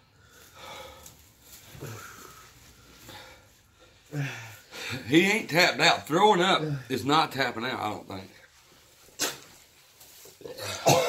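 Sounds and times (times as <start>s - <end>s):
man breathing heavily and sighing: 0.0s - 5.2s.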